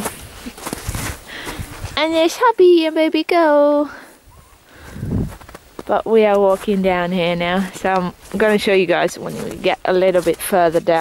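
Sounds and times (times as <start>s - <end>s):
wind rumbling on microphone: 0.0s - 2.0s, 4.2s - 11.0s
footsteps crunching on snow: 0.0s - 2.4s, 4.8s - 11.0s.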